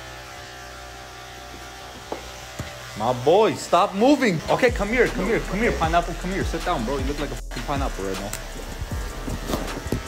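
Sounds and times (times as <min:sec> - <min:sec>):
electric hair clippers humming: 0:00.0 - 0:10.0.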